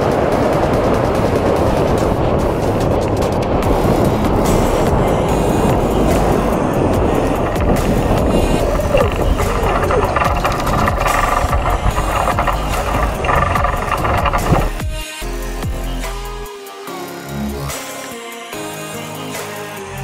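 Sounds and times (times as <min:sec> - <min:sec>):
wind rushing over microphone: 0:00.0 - 0:15.0
road rumble: 0:00.1 - 0:15.0
electronic background music: 0:03.9 - 0:18.1.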